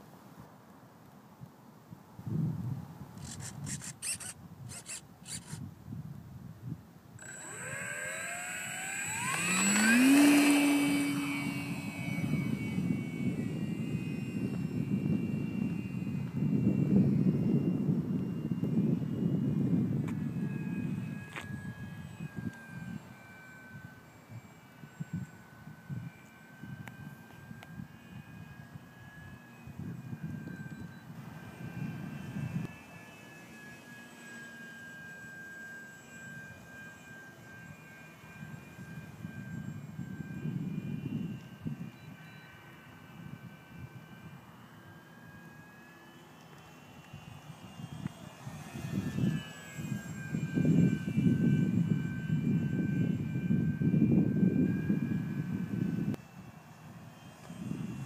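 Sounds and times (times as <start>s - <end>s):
rc plane motor and propeller whine: 1.0s - 58.0s.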